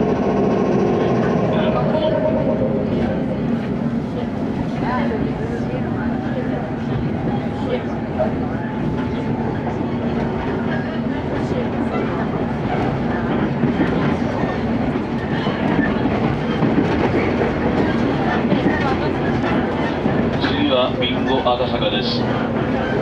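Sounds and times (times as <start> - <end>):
train wheels rumbling on rails: 0.0 - 23.0.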